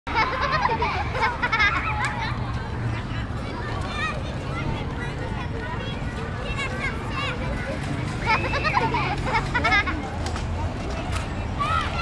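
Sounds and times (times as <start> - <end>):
children chattering and squealing: 0.1 - 12.0.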